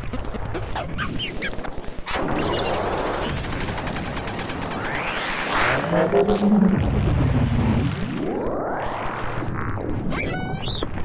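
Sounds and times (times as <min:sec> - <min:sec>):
synthesizer electronic noise: 0:00.0 - 0:11.0.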